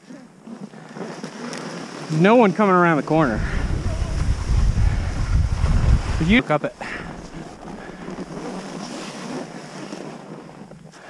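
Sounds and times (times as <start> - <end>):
skis sliding over snow: 0.1 - 11.0
wind rushing over microphone: 3.0 - 8.8.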